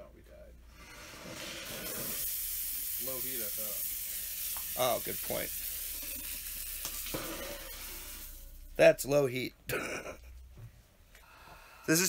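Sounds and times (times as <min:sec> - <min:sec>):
meat sizzling in a pot: 0:01.0 - 0:08.8.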